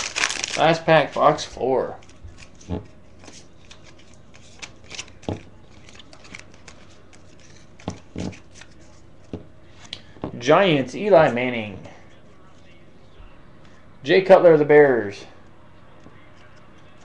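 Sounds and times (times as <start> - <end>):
card pack rustling: 0.0 - 9.1.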